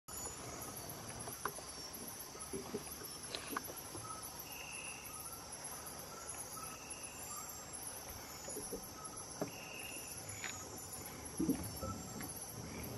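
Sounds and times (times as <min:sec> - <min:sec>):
night insects chorus: 0:00.1 - 0:12.9.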